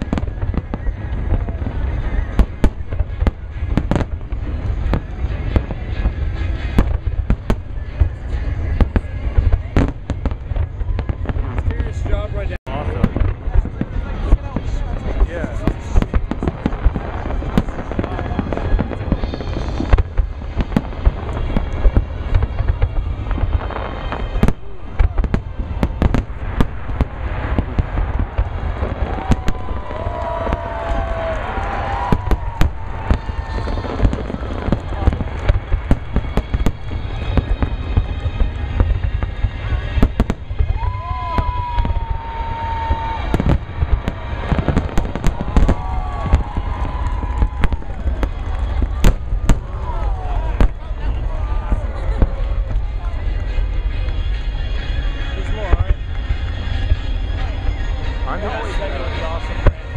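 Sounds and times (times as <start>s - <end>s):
deep boom of explosions: 0.0s - 54.2s
fireworks bursting: 0.0s - 59.9s.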